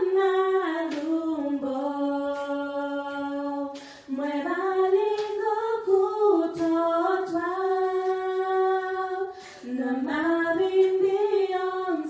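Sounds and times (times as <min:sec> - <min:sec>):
group singing gospel unaccompanied: 0:00.0 - 0:12.0.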